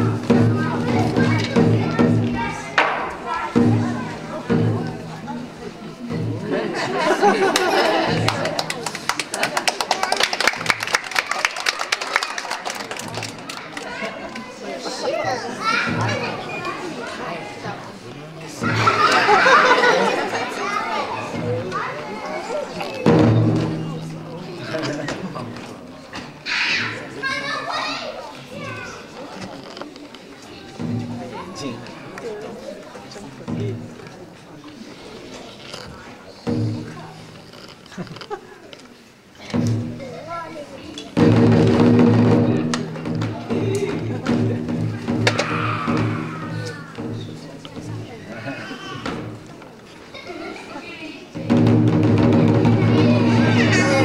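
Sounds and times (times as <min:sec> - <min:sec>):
children chattering and calling out: 0:00.0 - 0:54.0
sharp knock: 0:02.8 - 0:03.8.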